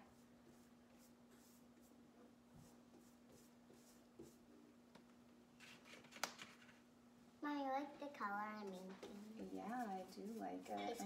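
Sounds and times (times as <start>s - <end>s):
paintbrush strokes on glass: 0.0s - 4.6s, 8.6s - 11.0s.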